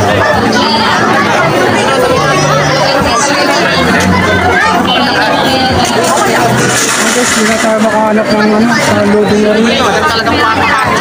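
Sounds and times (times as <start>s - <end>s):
people talking close by: 0.0s - 11.0s
street babble: 0.0s - 11.0s.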